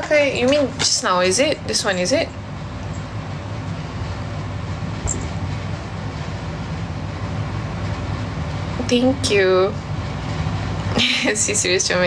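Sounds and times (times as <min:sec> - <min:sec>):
steady hum and hiss: 0:00.0 - 0:12.0.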